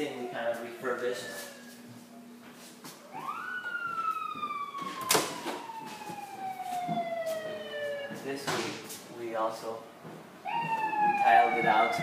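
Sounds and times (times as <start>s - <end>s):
emergency vehicle siren wailing: 0.0s - 1.9s, 3.0s - 8.4s, 10.4s - 12.0s.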